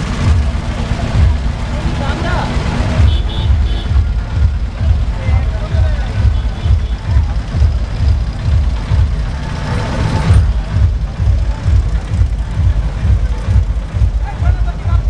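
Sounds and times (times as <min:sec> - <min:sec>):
crowd voices: 0:00.0 - 0:15.0
heavy bass beat: 0:00.0 - 0:15.0.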